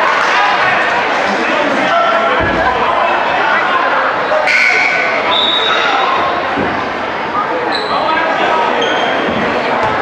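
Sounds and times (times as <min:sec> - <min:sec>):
hum of voices: 0:00.0 - 0:10.0
sneakers squeaking on floor: 0:07.6 - 0:10.0.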